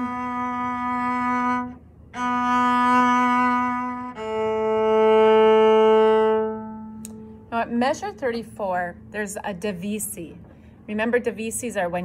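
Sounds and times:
cello playing slow bowed notes: 0:00.0 - 0:10.6.

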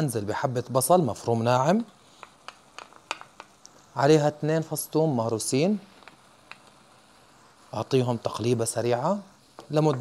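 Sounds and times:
wooden spoon clicks and taps: 0:02.2 - 0:03.6.

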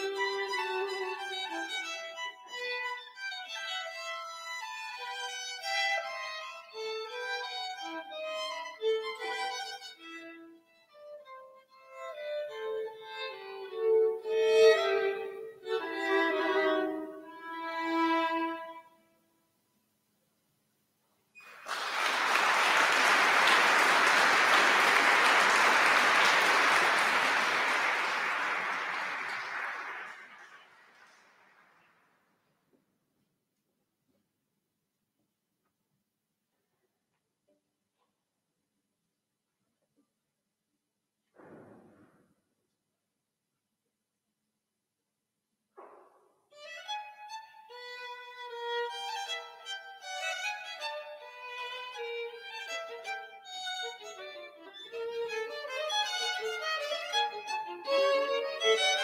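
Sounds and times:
violin duet: 0:00.0 - 0:19.0, 0:46.6 - 0:59.0
audience applause: 0:21.4 - 0:32.0.

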